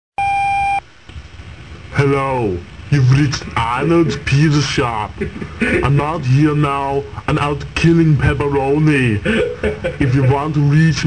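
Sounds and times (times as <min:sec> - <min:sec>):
answering machine beep: 0:00.2 - 0:00.8
faint hiss: 0:00.3 - 0:11.0.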